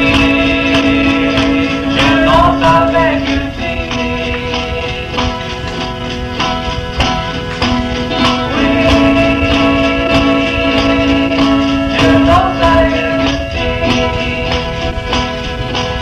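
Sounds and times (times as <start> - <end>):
garage rock guitar band with drums: 0.0 - 16.0.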